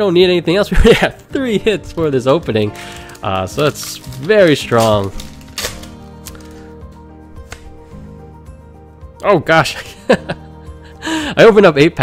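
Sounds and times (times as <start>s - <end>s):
background music with held tones: 0.0s - 12.0s
foil wrapper crinkling: 1.9s - 6.8s.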